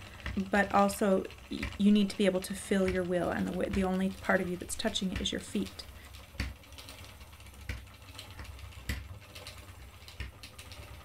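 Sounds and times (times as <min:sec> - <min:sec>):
low steady rumble: 0:00.0 - 0:11.0
spinning wheel treadle knocking: 0:00.0 - 0:11.0.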